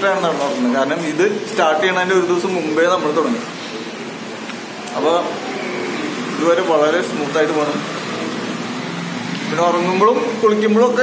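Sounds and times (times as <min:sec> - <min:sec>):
man speaking: 0:00.0 - 0:03.5, 0:06.3 - 0:08.0, 0:09.5 - 0:11.0
steady background hum: 0:00.0 - 0:11.0.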